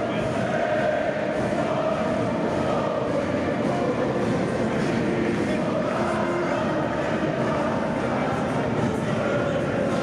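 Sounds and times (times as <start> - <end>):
large crowd singing in echoing hall: 0.0 - 10.0.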